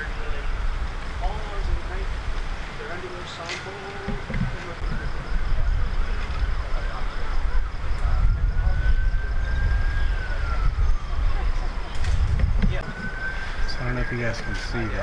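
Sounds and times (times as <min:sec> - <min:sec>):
siren wailing: 0:03.8 - 0:15.0.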